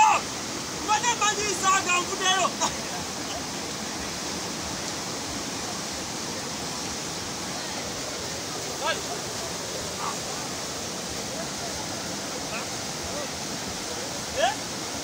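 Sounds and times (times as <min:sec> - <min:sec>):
voices calling out: 0:00.0 - 0:04.2, 0:07.4 - 0:14.6
river rapids rushing over rocks: 0:00.0 - 0:15.0.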